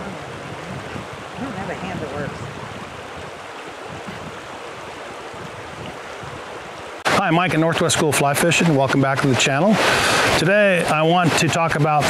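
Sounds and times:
river water rushing over riffles: 0.0s - 12.0s.

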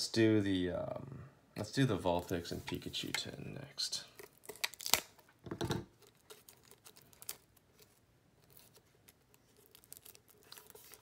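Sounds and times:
plastic wrap ripping: 4.2s - 5.3s, 5.9s - 11.0s
plastic shrink wrap crinkling: 4.2s - 11.0s.

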